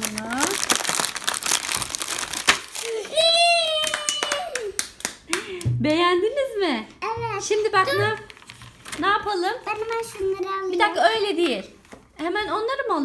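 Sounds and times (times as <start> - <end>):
plastic bag crinkling: 0.0 - 3.6, 7.8 - 12.2
child calling out: 2.8 - 4.7.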